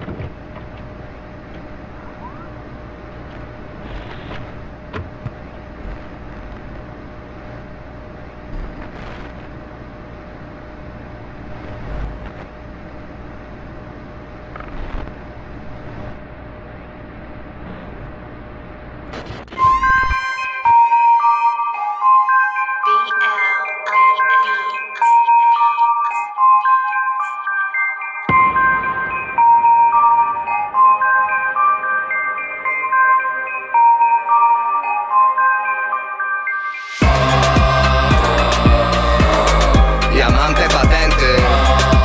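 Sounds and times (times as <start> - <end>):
hissing rumbling background noise: 0.0 - 20.1
faint constant whine: 0.0 - 21.7
synth music: 19.6 - 42.0.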